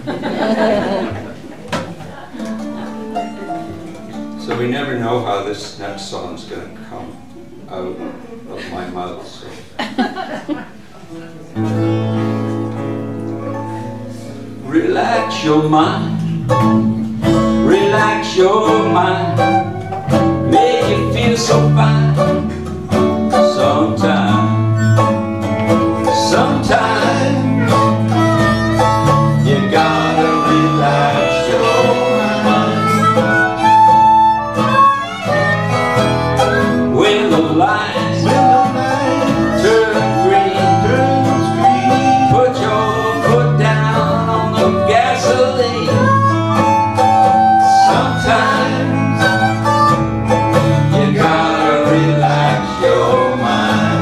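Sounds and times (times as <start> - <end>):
acoustic guitars strumming: 0.0 - 7.3, 10.1 - 54.0
upright bass: 11.5 - 54.0
man singing: 14.6 - 16.3, 17.6 - 22.6, 23.3 - 24.8, 26.0 - 28.1, 29.0 - 33.6, 36.8 - 49.5, 50.5 - 54.0
fiddle bowing: 16.4 - 20.9, 24.4 - 36.9, 37.6 - 43.8, 44.9 - 53.7.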